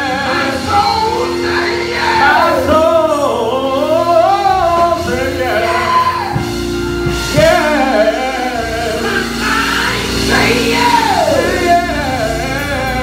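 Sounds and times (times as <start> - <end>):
held instrumental chords and bass: 0.0 - 13.0
man singing gospel song: 0.0 - 13.0.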